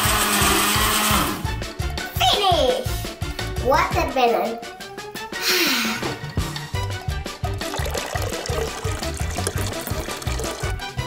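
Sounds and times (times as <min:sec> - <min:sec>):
blender pureeing fruit: 0:00.0 - 0:01.6, 0:07.6 - 0:10.8.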